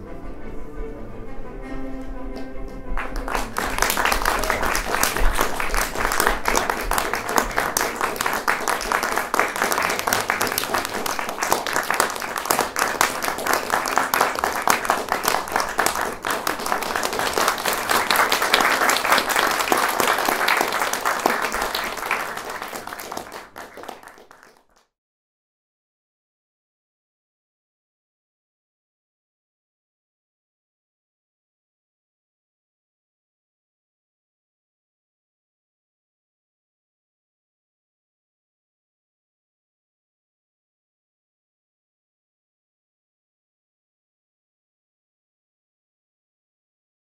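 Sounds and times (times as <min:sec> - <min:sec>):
audience applauding: 0:02.4 - 0:24.8.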